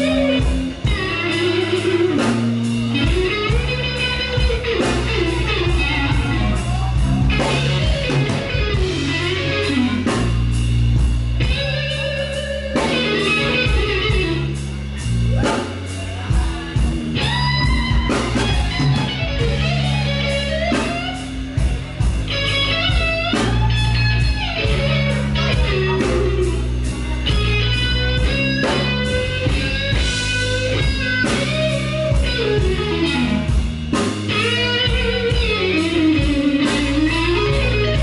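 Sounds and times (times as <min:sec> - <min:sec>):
bass guitar line: 0:00.0 - 0:38.0
electric guitar: 0:00.0 - 0:38.0.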